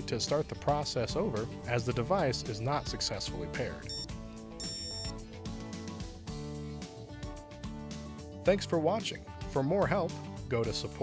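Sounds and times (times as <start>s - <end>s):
background music: 0.0s - 11.0s
electronic blip and beep: 3.9s - 5.1s.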